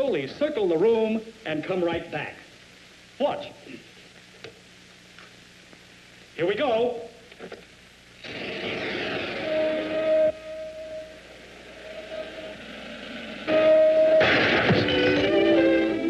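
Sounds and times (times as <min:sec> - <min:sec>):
model rocket hissing whoosh: 0:08.2 - 0:10.0
music: 0:09.7 - 0:16.0.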